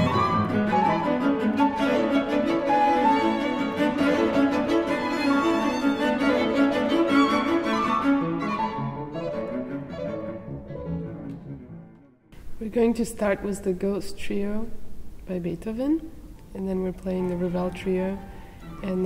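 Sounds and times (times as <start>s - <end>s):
piano trio chamber music: 0.0s - 12.5s.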